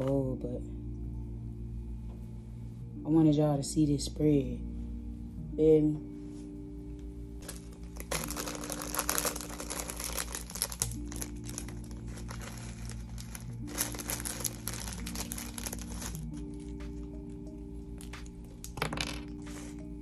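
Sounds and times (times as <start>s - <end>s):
background music: 0.0s - 20.0s
plastic packet crinkling: 7.4s - 17.1s.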